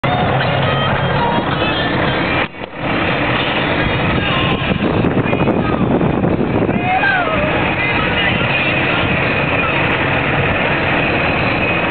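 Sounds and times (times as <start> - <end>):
vehicle running with wind noise: 0.0 - 11.9.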